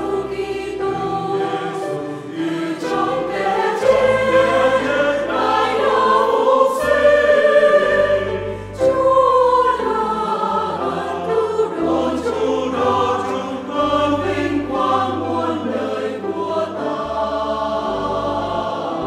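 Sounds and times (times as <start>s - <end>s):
choir singing a hymn: 0.0s - 19.0s
piano: 0.0s - 19.0s.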